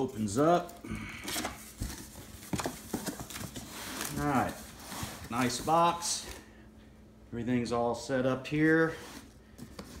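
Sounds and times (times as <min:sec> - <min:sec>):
cardboard flaps rustling: 0:01.3 - 0:06.4.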